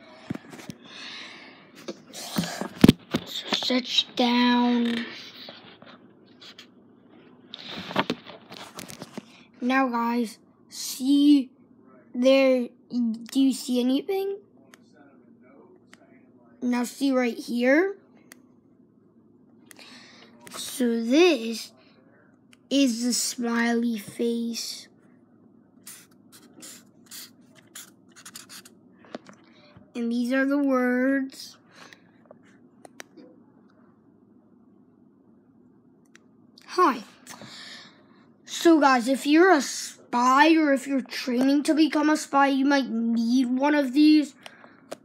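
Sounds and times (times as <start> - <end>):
pen and paper handling: 25.9 - 28.7.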